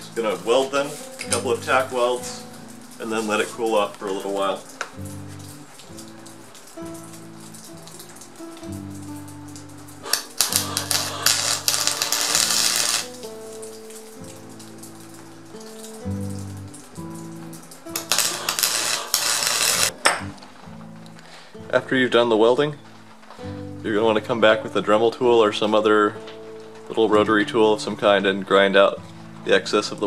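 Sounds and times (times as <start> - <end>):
welding arc crackle: 0.0 - 20.0
background music: 0.0 - 30.0.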